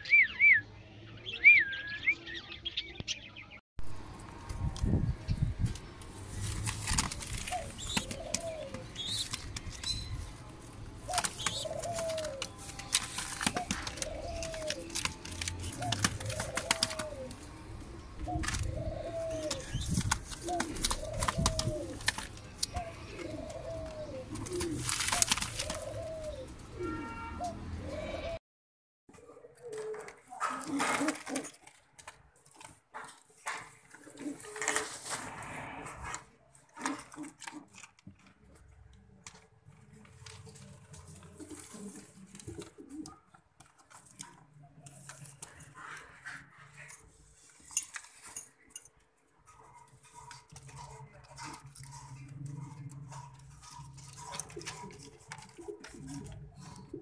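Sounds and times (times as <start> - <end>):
rustling close to microphone: 4.5 - 17.4, 19.6 - 23.5
pigeons cooing: 7.0 - 9.7, 10.9 - 28.4, 29.2 - 31.6, 34.0 - 37.8, 40.6 - 47.2, 49.5 - 57.0.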